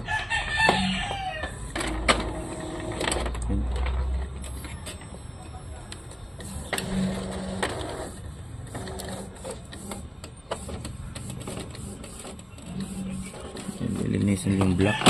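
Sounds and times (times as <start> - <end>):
printer motor whirring: 0.0 - 15.0.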